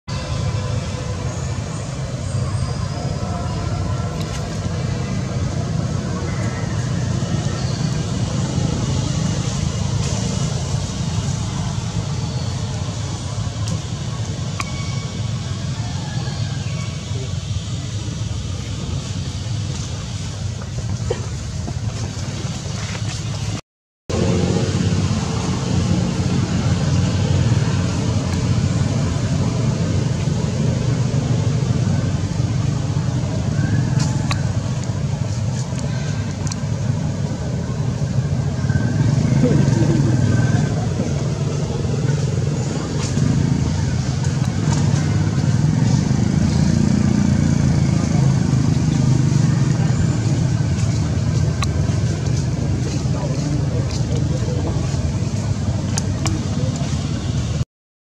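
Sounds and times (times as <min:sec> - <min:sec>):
low outdoor rumble: 0:00.1 - 0:57.6.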